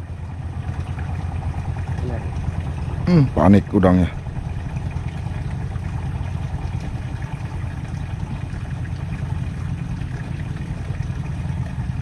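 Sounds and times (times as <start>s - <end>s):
small engine droning: 0.0s - 12.0s.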